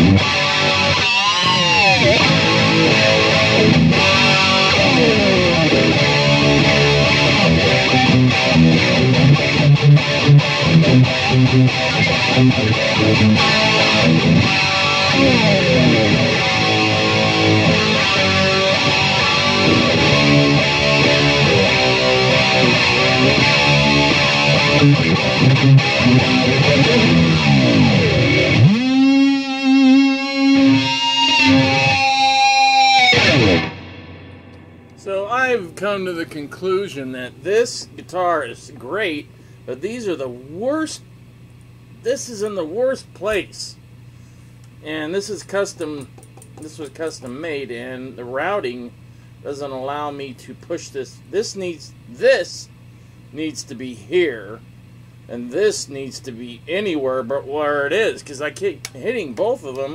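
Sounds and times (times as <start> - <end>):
electric guitar solo: 0.0 - 35.0.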